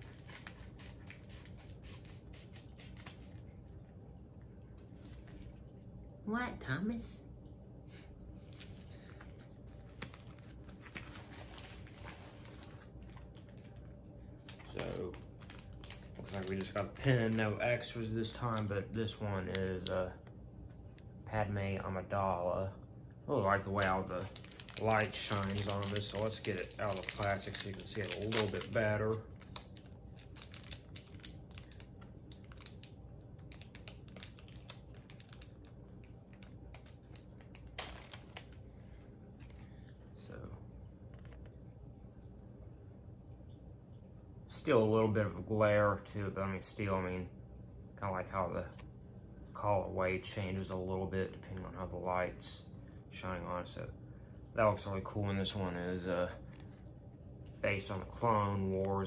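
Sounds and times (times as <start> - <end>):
packaging rustling and crinkling: 0.0 - 3.5, 8.5 - 20.0, 23.4 - 38.6.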